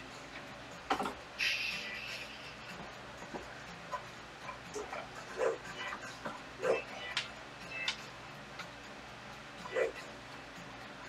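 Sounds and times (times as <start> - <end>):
faint steady music: 0.0 - 11.0.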